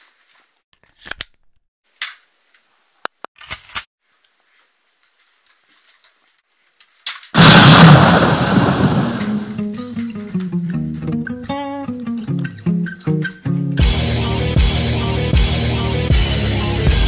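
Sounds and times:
loud gunshot-like blast: 0:07.4 - 0:09.7.

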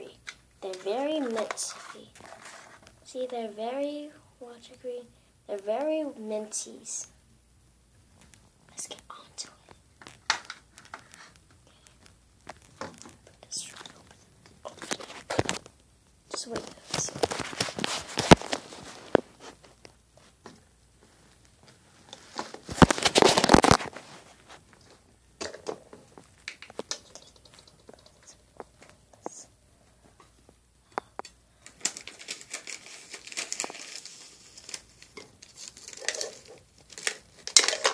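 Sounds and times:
crinkling and rustling: 0:00.1 - 0:03.1, 0:08.0 - 0:37.9.

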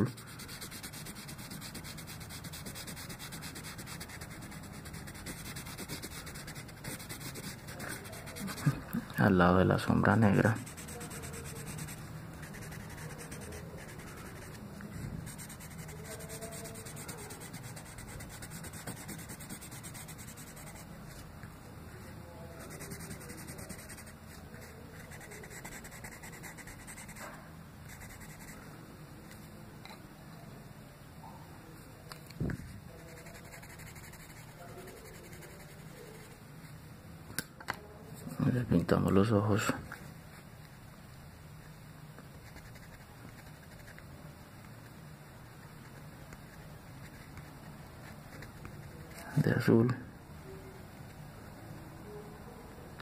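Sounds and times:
pencil scratching on paper: 0:00.0 - 0:08.8, 0:10.4 - 0:14.6, 0:15.2 - 0:20.9, 0:22.6 - 0:27.3, 0:27.9 - 0:28.6, 0:33.0 - 0:36.4, 0:42.4 - 0:44.0, 0:45.8 - 0:49.3.

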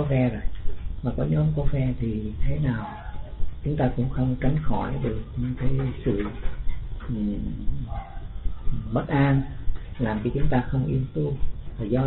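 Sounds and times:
man speaking hesitantly: 0:07.0 - 0:12.0.

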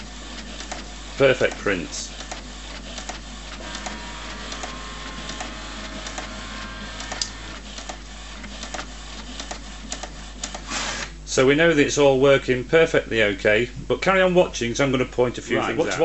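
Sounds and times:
printer motor whine: 0:00.0 - 0:11.2
printer carriage shuttling and clicking: 0:02.2 - 0:07.6.

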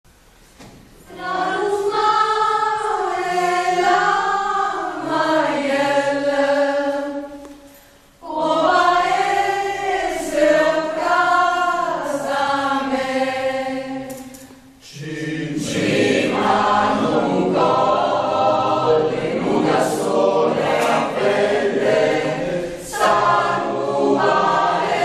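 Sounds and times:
mixed choir singing in harmony: 0:01.0 - 0:25.0.

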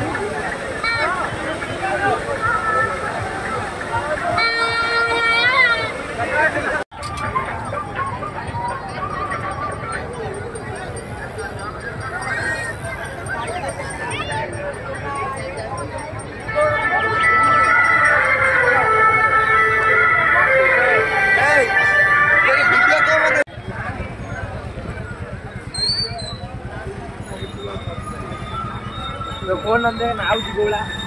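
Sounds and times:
crowd hubbub: 0:00.0 - 0:31.0.

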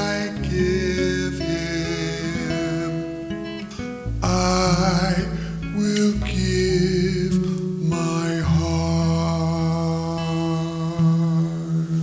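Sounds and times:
man singing a long note: 0:00.0 - 0:03.2, 0:04.2 - 0:12.0
acoustic guitar chord: 0:00.0 - 0:12.0.

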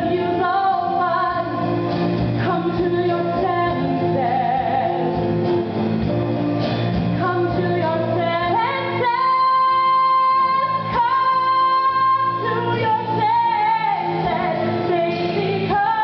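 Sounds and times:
live band playing: 0:00.0 - 0:16.0.

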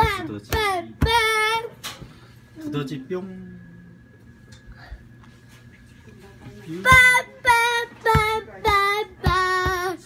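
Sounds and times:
young boy singing: 0:00.0 - 0:01.8, 0:06.8 - 0:10.0.

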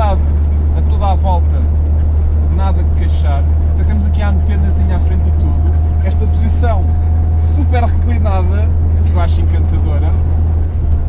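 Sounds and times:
man talking: 0:00.0 - 0:01.7, 0:02.5 - 0:10.3
car engine droning: 0:00.0 - 0:11.0.

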